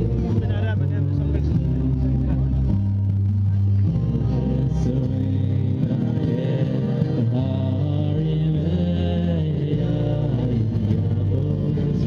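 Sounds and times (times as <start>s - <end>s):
person's voice: 0.0s - 10.3s
live band music through speaker: 0.0s - 12.0s.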